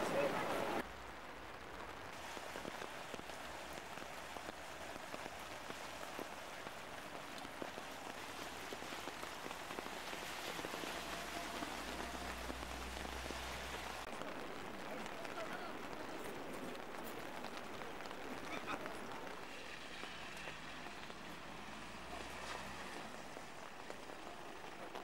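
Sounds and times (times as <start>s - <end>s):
rain falling on street: 0.0s - 25.0s.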